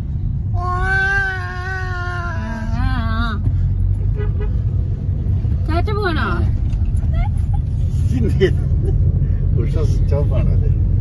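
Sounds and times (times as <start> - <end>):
car cabin rumble: 0.0 - 10.6
toddler's drawn-out vocal call: 0.6 - 2.9.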